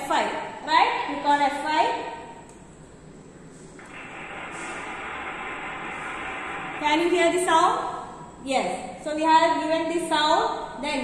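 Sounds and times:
noisy hiss sound effect: 3.8 - 7.8.

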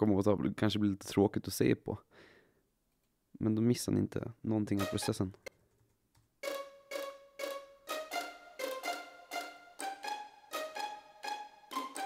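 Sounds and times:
string ensemble short detached notes: 4.8 - 5.2, 6.4 - 12.0.

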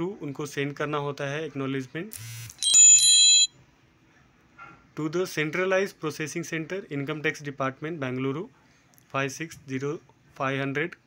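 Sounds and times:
phone notification ring: 2.6 - 3.5.

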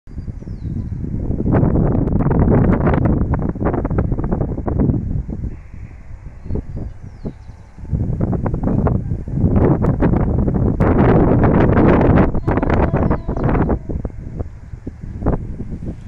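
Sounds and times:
wind buffeting microphone: 0.1 - 16.0.

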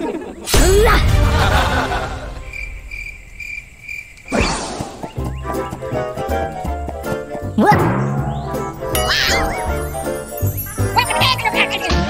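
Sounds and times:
cricket chirping: 1.2 - 6.3, 8.0 - 11.9
bouncy background music: 5.1 - 12.0.

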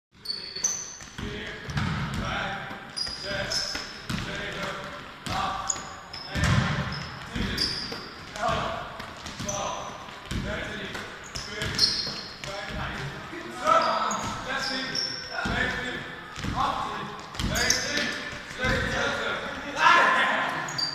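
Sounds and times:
sneaker squeaks: 0.2 - 2.2, 2.8 - 4.2, 5.3 - 19.2, 20.5 - 20.9
players' voices: 0.2 - 20.9
basketball bouncing on floor: 1.0 - 2.3, 3.1 - 13.1, 17.2 - 18.9
basketball hitting backboard: 1.7 - 2.2, 6.4 - 7.6.

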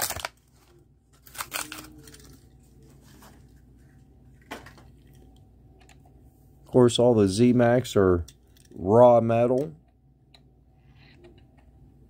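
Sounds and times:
faint low hum: 0.1 - 12.0.

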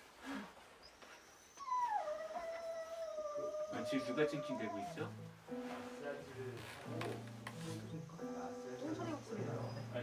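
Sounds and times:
dog whining: 0.8 - 5.2.

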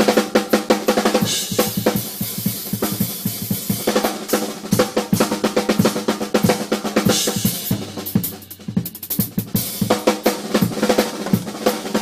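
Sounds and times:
drum kit played hard: 0.0 - 12.0.

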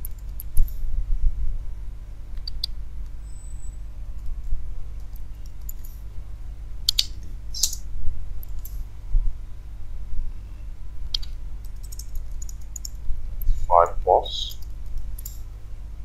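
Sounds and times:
steady low rumble: 0.1 - 16.0
computer keyboard typing: 11.2 - 13.0.

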